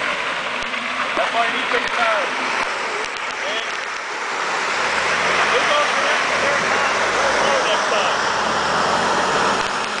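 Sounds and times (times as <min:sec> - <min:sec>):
engine running under load: 0:00.0 - 0:10.0
tyres churning through mud: 0:00.0 - 0:10.0.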